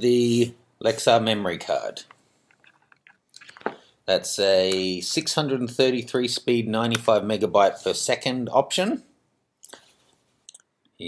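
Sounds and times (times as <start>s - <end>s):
person speaking: 0.0s - 2.2s, 3.3s - 9.8s.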